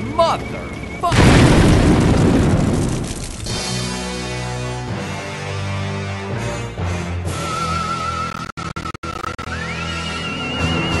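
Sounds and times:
truck explosion roar: 1.1 - 4.0.

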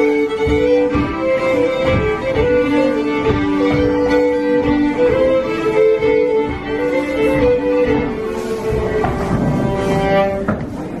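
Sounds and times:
two fiddles playing held notes: 0.0 - 11.0.

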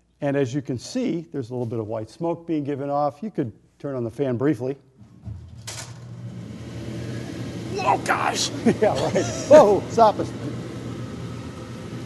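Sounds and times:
exhaust fan humming: 5.0 - 12.0.

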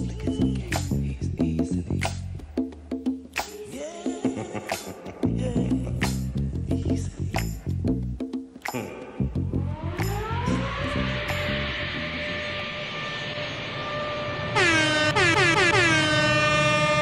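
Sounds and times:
electronic logo music: 8.7 - 15.2
synth sweep rising: 9.0 - 17.0
horn-like synth blast: 9.5 - 17.0.

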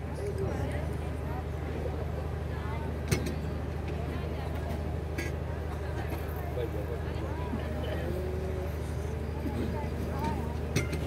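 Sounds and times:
murmur of voices: 0.0 - 11.0.

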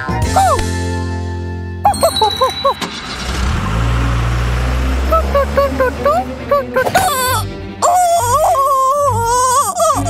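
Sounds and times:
cartoon car engine rumble: 1.9 - 9.4.

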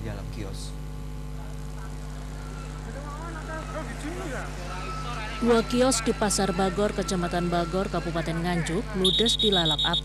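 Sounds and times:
steady electrical hum: 0.0 - 10.0
faint voices: 1.3 - 10.0.

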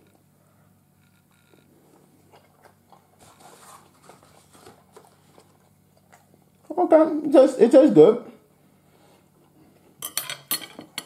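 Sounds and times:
chewing crunchy food: 1.9 - 6.8.

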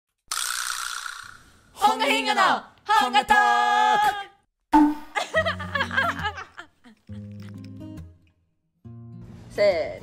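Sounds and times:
hissy rattle sound effect: 0.3 - 1.6.

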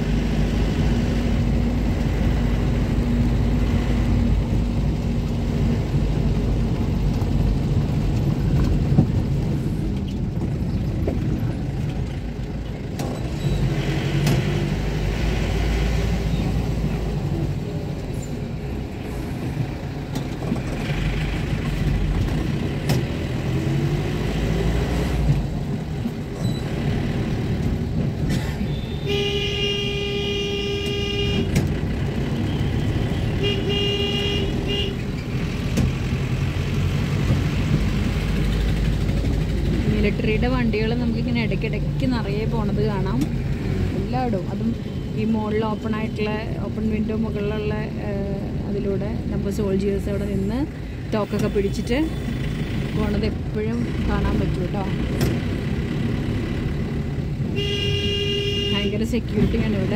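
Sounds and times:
car engine and road rumble: 0.0 - 59.9
vehicle horn: 28.7 - 31.6, 32.5 - 35.0, 57.6 - 59.0.

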